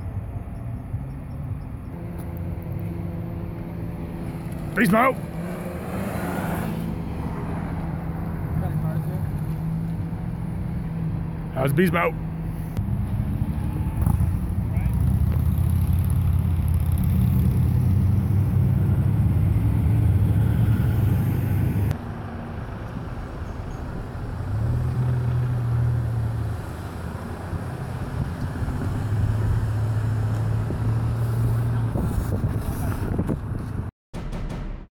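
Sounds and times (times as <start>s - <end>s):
vehicle engines running: 0.0s - 33.9s.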